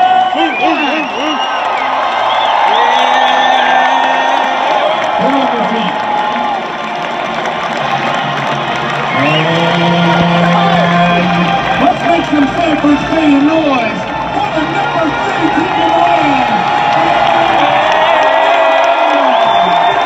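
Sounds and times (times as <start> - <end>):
crowd cheering: 0.0 - 20.0
brass band sustained chords: 7.0 - 17.8.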